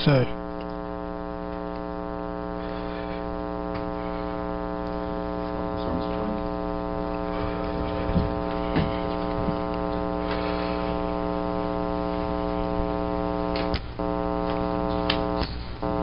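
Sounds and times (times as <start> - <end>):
electrical hum: 0.0 - 16.0.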